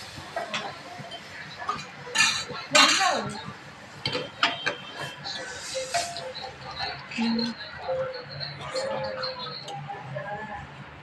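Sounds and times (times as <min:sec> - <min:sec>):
ladle and metal pots clattering: 0:01.7 - 0:03.3.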